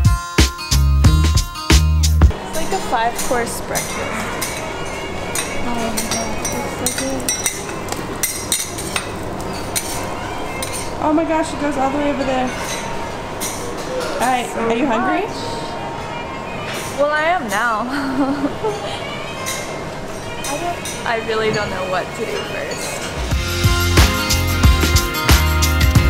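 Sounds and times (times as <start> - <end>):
faint voices in a restaurant: 2.3 - 23.3
metal kitchen utensils clinking: 2.5 - 14.9, 19.4 - 23.3.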